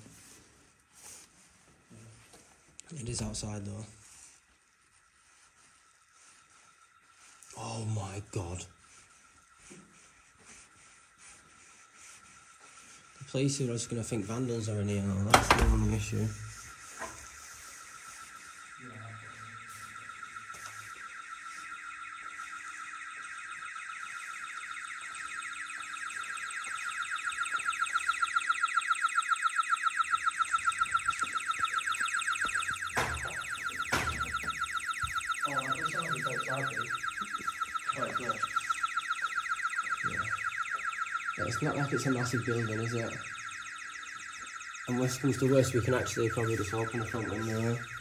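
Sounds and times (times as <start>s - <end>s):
pulsing alarm tone: 0.0s - 48.0s.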